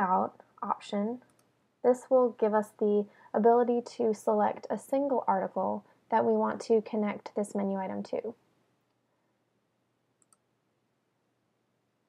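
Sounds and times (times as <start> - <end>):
computer mouse click: 1.2 - 1.5, 10.2 - 10.5.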